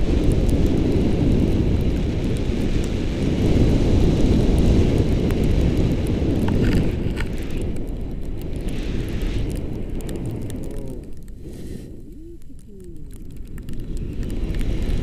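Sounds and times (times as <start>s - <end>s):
wind buffeting microphone: 0.0s - 15.0s
faint clicks: 6.4s - 15.0s.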